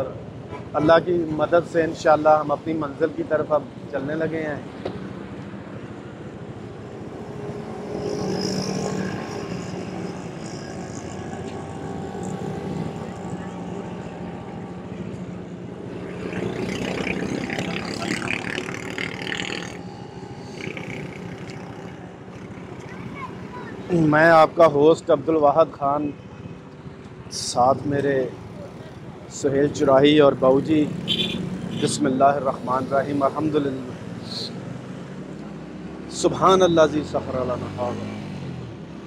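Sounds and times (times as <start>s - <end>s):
voices of passersby: 0.0s - 36.1s
passing motor vehicles: 0.0s - 39.0s.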